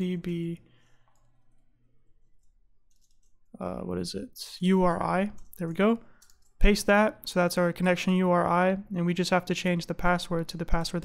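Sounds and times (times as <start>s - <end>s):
keyboard keys clicking: 2.4s - 3.4s.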